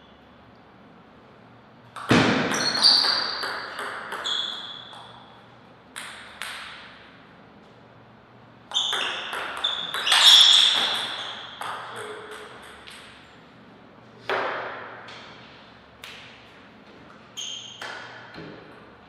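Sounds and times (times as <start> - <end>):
table tennis ball hitting bats: 1.9 - 7.2, 8.7 - 13.2, 14.2 - 15.3, 17.6 - 18.7.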